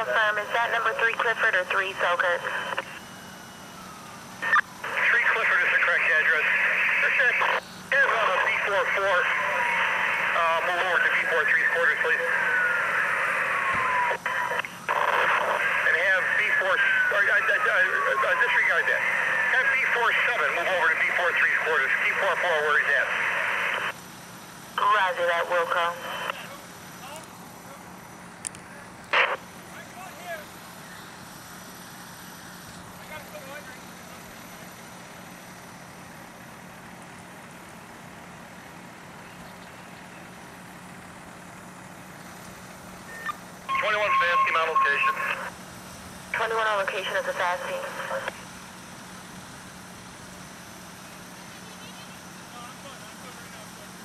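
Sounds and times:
garbled radio voices: 0.0 - 3.1, 4.4 - 24.0, 24.8 - 27.2, 28.8 - 30.5, 43.1 - 45.5, 46.3 - 48.4
hissy radio channel: 0.0 - 3.1, 3.8 - 24.0, 24.8 - 27.8, 28.6 - 31.1, 43.1 - 45.6, 46.3 - 48.5
wailing siren: 0.0 - 23.8, 43.0 - 45.5.

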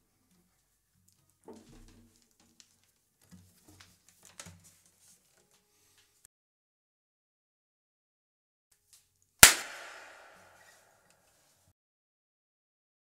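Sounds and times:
guitar handling knocks and rustles: 1.2 - 6.2.

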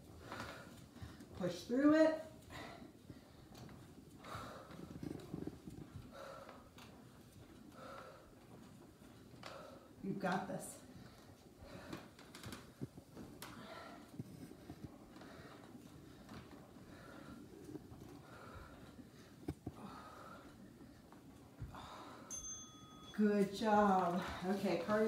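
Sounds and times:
woman breathing heavily: 0.0 - 10.0, 10.7 - 22.4, 23.6 - 25.0.

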